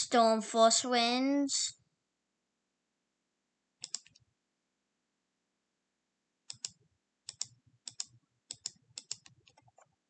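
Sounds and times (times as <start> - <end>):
computer mouse clicks: 3.8 - 4.3, 6.5 - 10.0.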